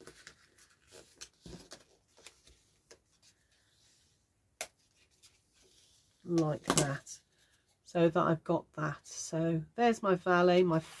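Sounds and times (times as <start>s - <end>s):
card folding taps and rustles: 0.0s - 3.6s.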